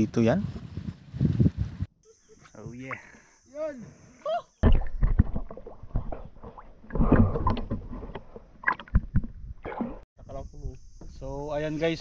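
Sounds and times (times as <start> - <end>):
water sloshing and splashing: 4.6 - 10.0.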